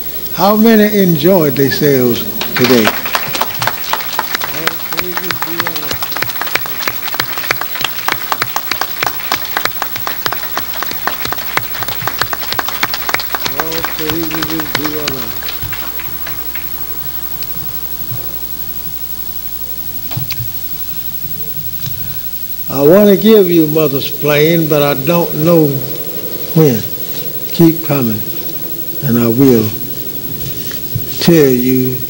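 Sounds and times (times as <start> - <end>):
audience applauding: 0.0 - 19.2, 22.0 - 32.0.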